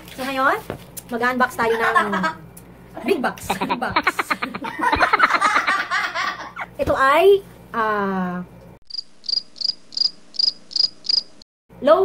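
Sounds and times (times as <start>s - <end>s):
cricket chirping: 8.9s - 11.4s.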